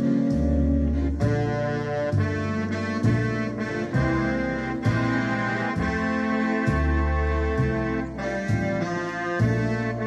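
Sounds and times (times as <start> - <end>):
keyboard playing chords with accompaniment: 0.0 - 10.0.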